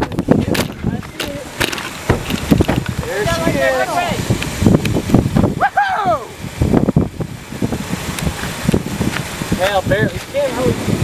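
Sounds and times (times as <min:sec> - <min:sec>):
wind buffeting microphone: 0:00.0 - 0:11.0
person speaking: 0:03.0 - 0:04.4.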